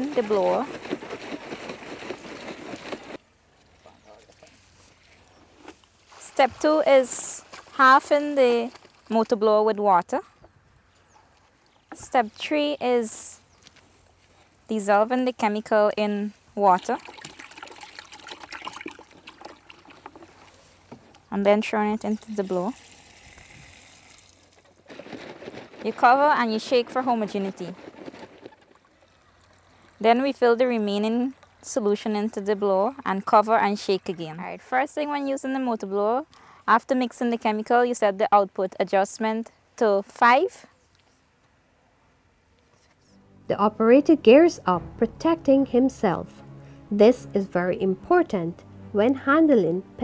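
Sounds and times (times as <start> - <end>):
plastic tank rustling and scraping: 0.0 - 3.2, 24.5 - 29.0
water pouring into plastic tank: 16.8 - 20.6, 21.9 - 25.1.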